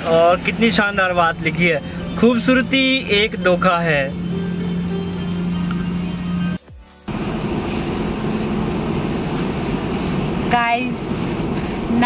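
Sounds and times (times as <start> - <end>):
background music: 0.0 - 9.3
car driving hum: 0.0 - 11.9.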